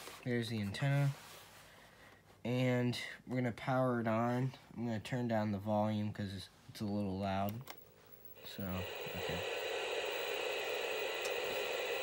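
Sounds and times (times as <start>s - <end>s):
tv static hiss: 8.2s - 12.0s.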